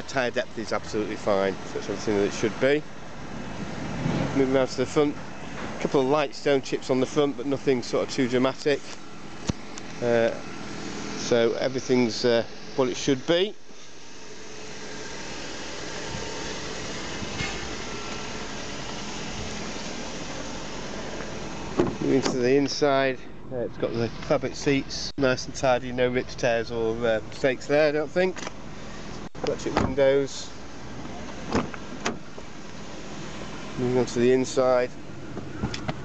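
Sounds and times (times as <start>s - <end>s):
car door latch clicks: 21.8s - 22.4s, 31.5s - 32.3s.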